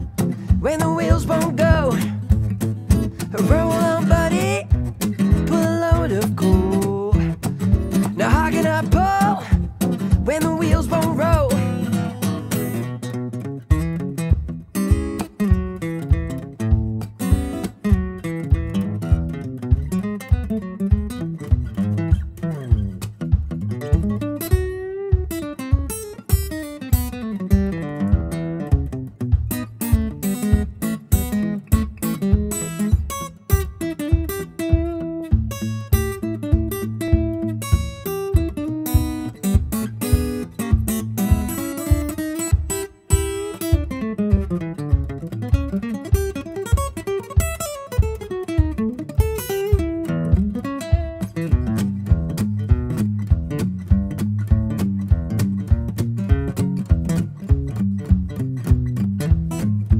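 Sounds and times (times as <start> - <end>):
acoustic guitar melody: 0.0 - 59.9
percussive thumps: 0.0 - 59.9.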